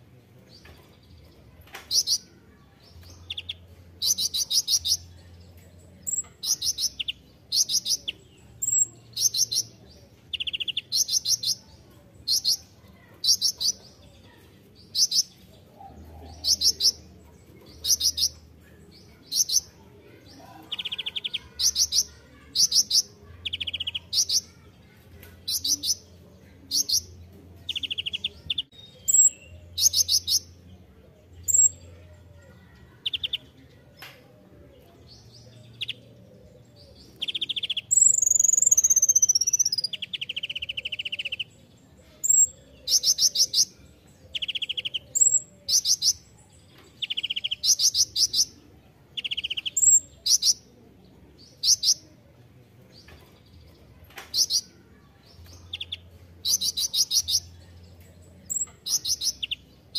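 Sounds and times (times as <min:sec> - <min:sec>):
bird singing buzzy trills: 0:06.0 - 0:11.6, 0:26.7 - 0:30.6, 0:36.9 - 0:41.5.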